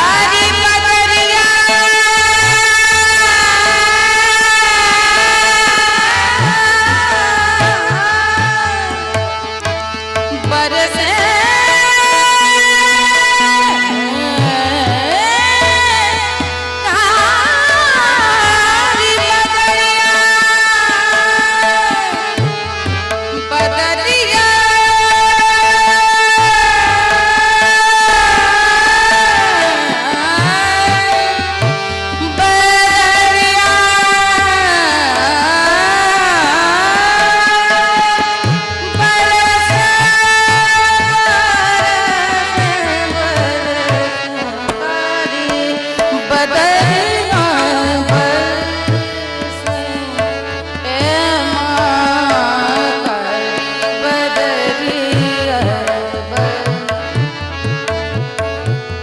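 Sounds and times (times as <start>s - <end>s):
woman singing: 0.0s - 9.3s, 10.3s - 57.4s
harmonium: 0.0s - 59.0s.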